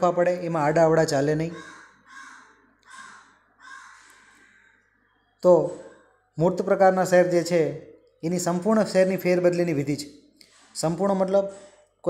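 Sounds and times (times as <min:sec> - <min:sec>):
bird harsh calls: 0:01.4 - 0:05.1.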